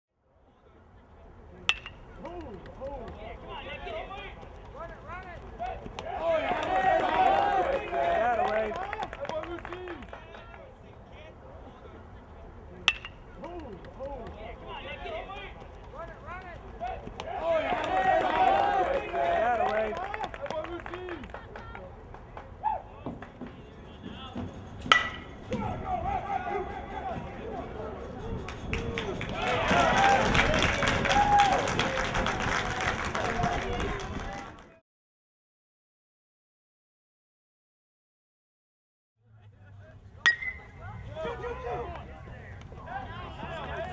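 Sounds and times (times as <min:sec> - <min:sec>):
murmur of voices: 0:00.4 - 0:30.6, 0:39.3 - 0:43.9
metal bat hitting ball: 0:01.6 - 0:02.4, 0:12.8 - 0:13.4, 0:24.8 - 0:25.6, 0:40.2 - 0:40.8.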